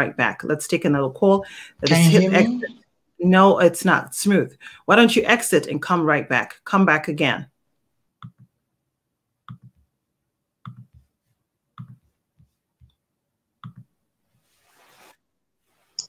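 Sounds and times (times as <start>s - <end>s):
soft hiss: 1.8s - 2.8s.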